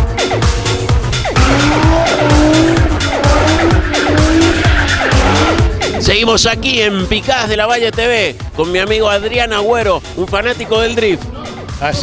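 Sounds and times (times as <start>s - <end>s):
electronic dance music: 0.0s - 9.5s
car engine note wavering: 1.0s - 6.1s
tyre squeal: 1.4s - 5.8s.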